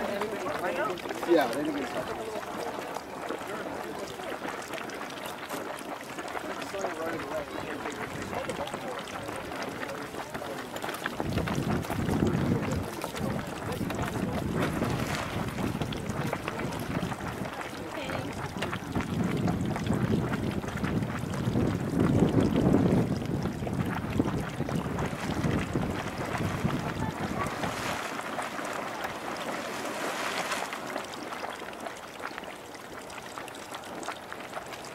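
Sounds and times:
small geyser eruption bursting: 0.0s - 34.8s
hot spring pool splashing: 0.0s - 34.9s
wind buffeting microphone: 11.1s - 28.1s.

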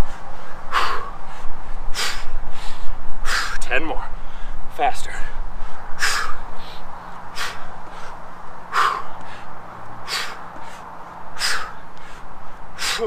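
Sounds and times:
sharp exhales of breath: 0.0s - 3.6s, 5.6s - 13.0s.

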